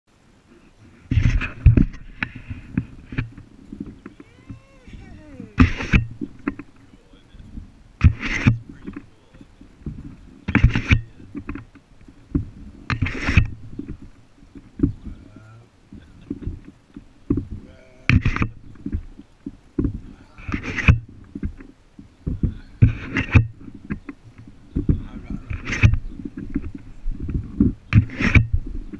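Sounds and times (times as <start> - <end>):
swing hangers creaking: 0.1 - 28.9.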